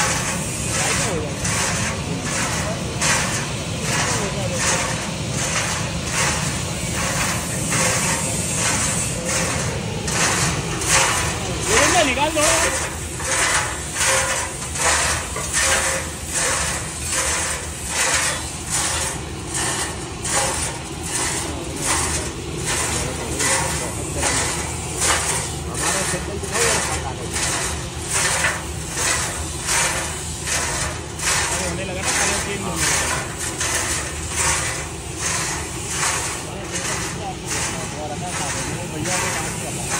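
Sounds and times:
low burner roar: 0.0 - 39.9.

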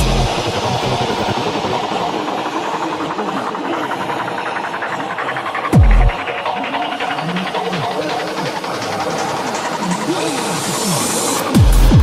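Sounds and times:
rattling electronic noise texture: 0.0 - 12.0.

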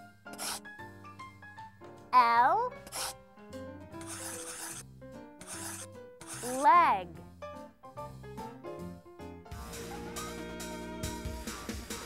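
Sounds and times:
soft background music: 0.0 - 12.0
pen scratching on paper: 0.3 - 0.6, 2.8 - 3.2, 4.0 - 4.8, 5.4 - 6.8.

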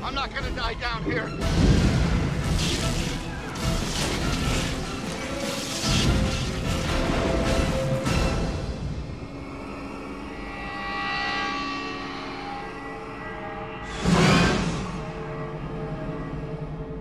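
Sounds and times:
suspenseful sustained score: 0.0 - 17.0.

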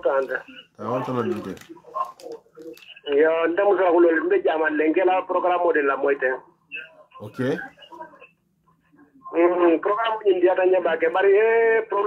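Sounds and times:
person talking over phone: 0.0 - 8.3.

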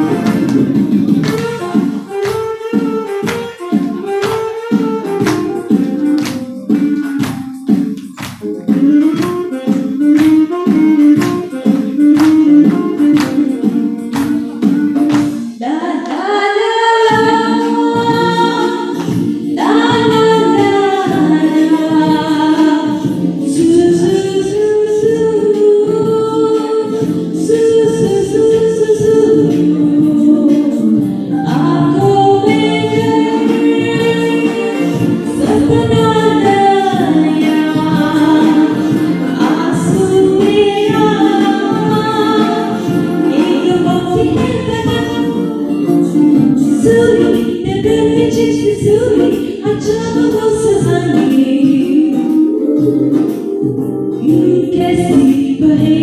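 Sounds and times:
karaoke backing track: 0.0 - 56.0
woman singing into microphone: 0.0 - 56.0.

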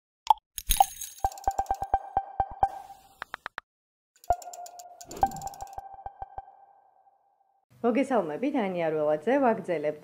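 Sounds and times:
pops: 1.4 - 3.6
held tone: 4.3 - 7.1.

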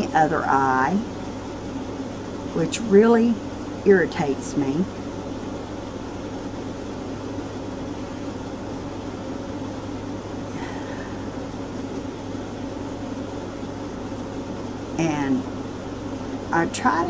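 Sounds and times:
low machine hum: 0.0 - 17.0.

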